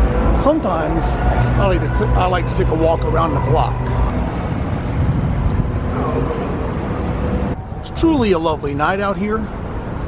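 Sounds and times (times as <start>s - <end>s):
cars passing: 0.0s - 10.0s
road rumble: 0.0s - 10.0s.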